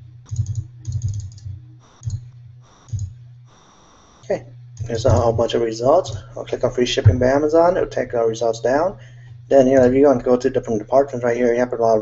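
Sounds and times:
computer keyboard keystrokes: 0:00.3 - 0:03.2.

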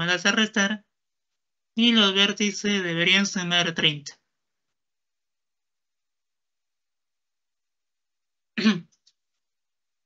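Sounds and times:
man clearing his throat: 0:08.6 - 0:09.0.

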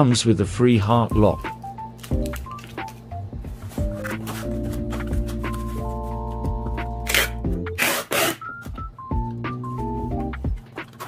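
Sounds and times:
background music with held notes: 0:00.0 - 0:11.0
packing tape pulled off roll: 0:01.5 - 0:03.0, 0:03.6 - 0:05.9, 0:07.0 - 0:08.6.

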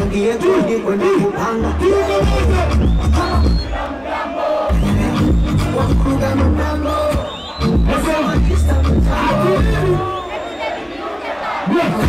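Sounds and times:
loud bass-heavy music: 0:00.0 - 0:03.7, 0:04.7 - 0:10.2
crowd shouting and cheering: 0:00.0 - 0:12.0.

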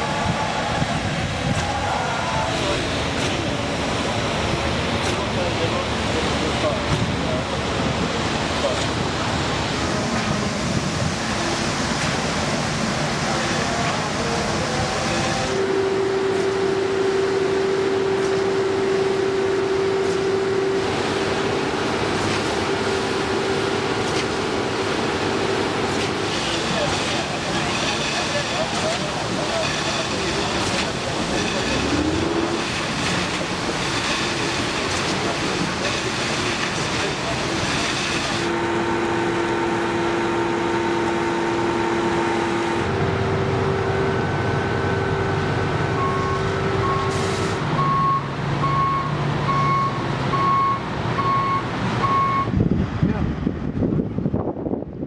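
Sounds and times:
concrete mixer and pump droning: 0:00.0 - 0:55.0
engine hum: 0:00.0 - 0:55.0.

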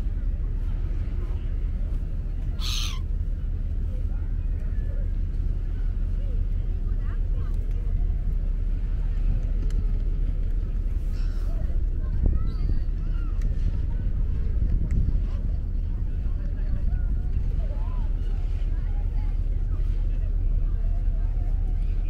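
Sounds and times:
faint distant voices: 0:00.0 - 0:22.0
steady low rumble: 0:00.0 - 0:22.0
gull squawk: 0:02.4 - 0:03.1.

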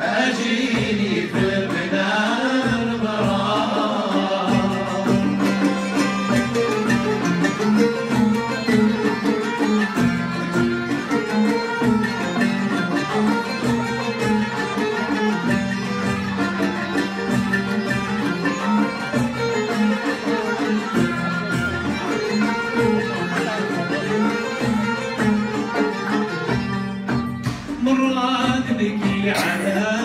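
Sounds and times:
violins lutes and keyboard playing: 0:00.0 - 0:30.0.

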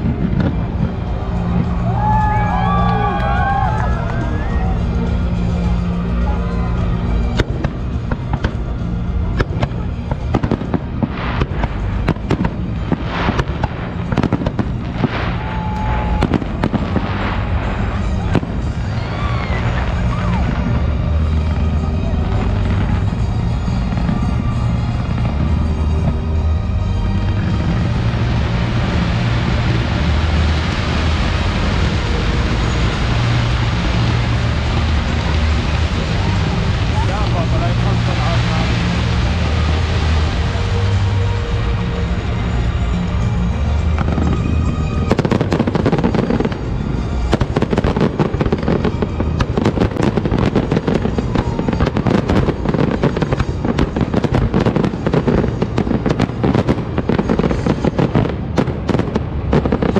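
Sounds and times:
fireworks bangs and crackles: 0:00.0 - 0:59.9
music bass notes: 0:00.0 - 0:59.9
steady noisy din: 0:00.0 - 0:59.9.

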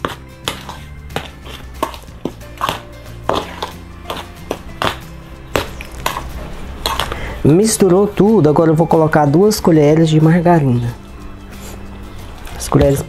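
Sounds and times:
spoon scraping metal bowl: 0:00.0 - 0:07.4
background music: 0:00.0 - 0:13.0.

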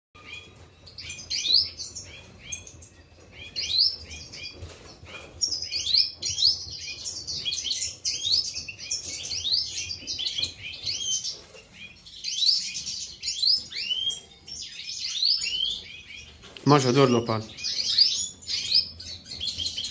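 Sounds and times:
finches chirping and twittering: 0:00.2 - 0:19.9.

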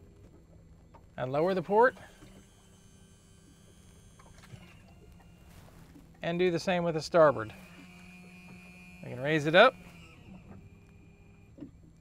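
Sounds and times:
anchor motor whine and hum: 0:00.0 - 0:12.0.

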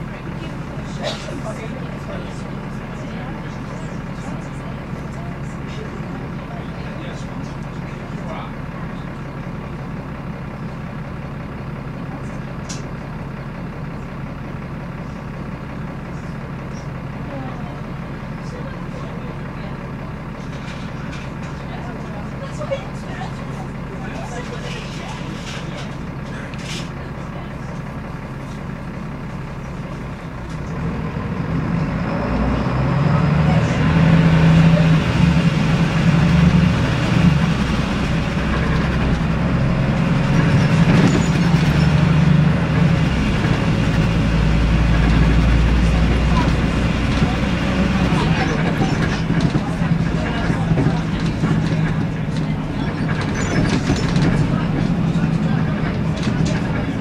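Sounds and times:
bus diesel engine idling and revving: 0:00.0 - 0:57.0.

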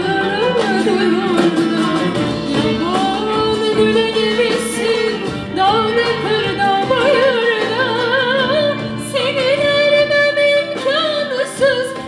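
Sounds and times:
traditional instrumental ensemble: 0:00.0 - 0:12.0.

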